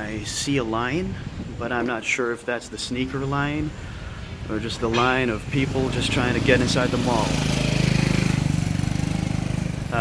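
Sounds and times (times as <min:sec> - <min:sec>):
small motorcycle engine running: 0:05.6 - 0:10.0.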